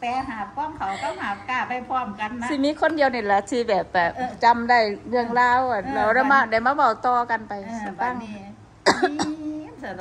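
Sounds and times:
person coughing: 8.9 - 9.5.

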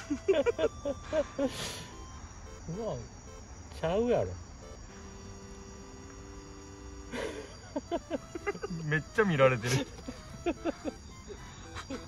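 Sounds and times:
person laughing: 0.0 - 1.9, 7.1 - 8.9, 9.6 - 12.0
crickets chirring: 0.0 - 12.0.

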